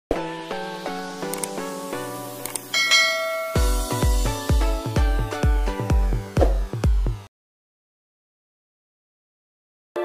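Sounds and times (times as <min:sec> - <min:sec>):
intro music: 0:00.3 - 0:07.3
quick clicks: 0:01.3 - 0:01.6, 0:02.4 - 0:02.7
bell-like notification chime: 0:02.7 - 0:04.1
electronic beat with bass kicks: 0:03.4 - 0:07.3.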